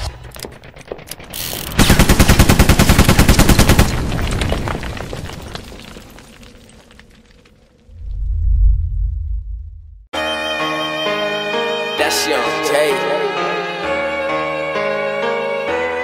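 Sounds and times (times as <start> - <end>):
rapid machine-gun fire: 1.7 - 4.1
deep boom: 7.9 - 10.1.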